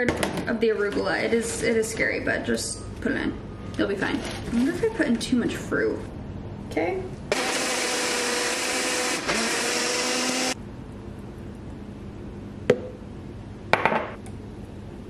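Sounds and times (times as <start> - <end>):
blender motor running: 7.3 - 10.6.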